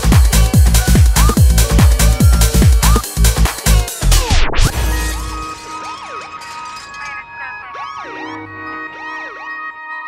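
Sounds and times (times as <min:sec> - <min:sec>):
siren-like synthesizer tones: 0:04.5 - 0:10.0.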